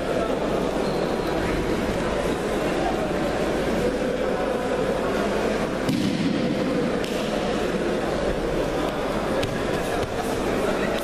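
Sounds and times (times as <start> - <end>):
large crowd din: 0.0 - 11.0.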